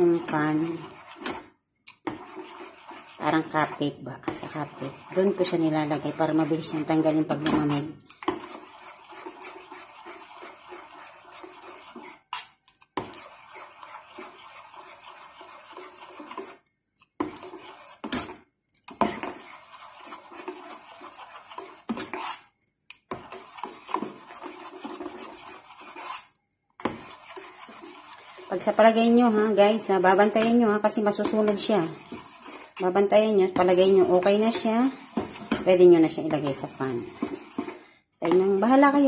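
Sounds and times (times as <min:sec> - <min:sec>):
metal spoon scraping steel pot: 0:00.0 - 0:16.6, 0:23.1 - 0:39.0.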